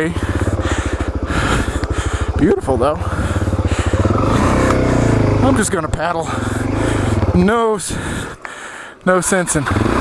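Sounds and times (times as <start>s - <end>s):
motorcycle engine chugging: 0.0s - 10.0s.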